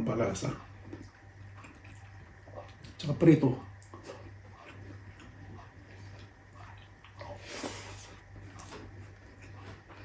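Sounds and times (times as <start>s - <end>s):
steady low hum: 0.0s - 10.0s
fingers mixing rice on a plate: 0.2s - 10.0s.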